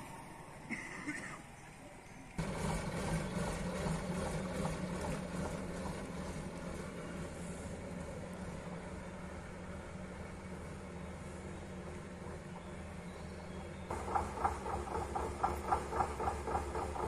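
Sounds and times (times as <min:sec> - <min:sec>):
diesel truck engine pulling away: 0:02.3 - 0:17.0.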